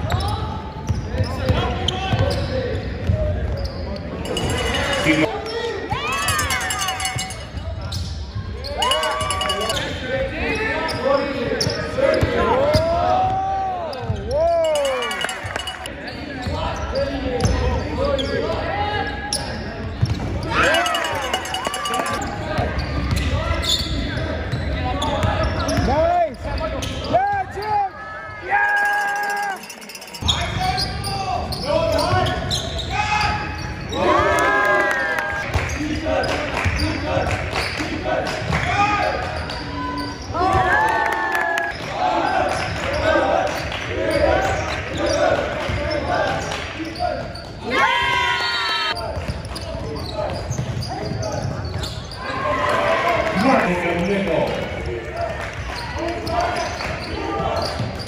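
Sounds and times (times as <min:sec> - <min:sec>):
sneaker squeaks on wooden court: 0:00.0 - 0:05.2, 0:06.2 - 0:10.0, 0:10.6 - 0:14.4, 0:16.0 - 0:18.6, 0:19.3 - 0:20.6, 0:21.2 - 0:27.2, 0:30.1 - 0:34.1, 0:39.2 - 0:40.7, 0:43.6 - 0:47.7, 0:49.0 - 0:52.4, 0:54.5 - 0:58.0
voices of players and spectators: 0:00.0 - 0:58.0.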